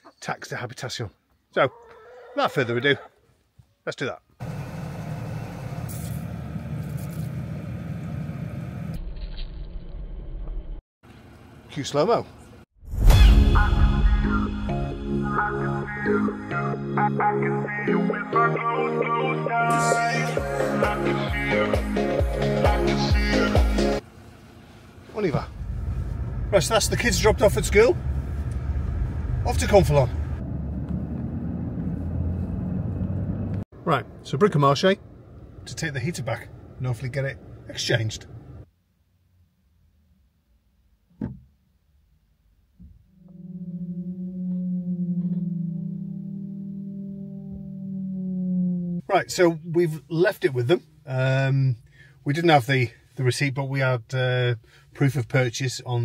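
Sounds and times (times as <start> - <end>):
car engine idling: 4.4 - 8.9, 23.1 - 38.7.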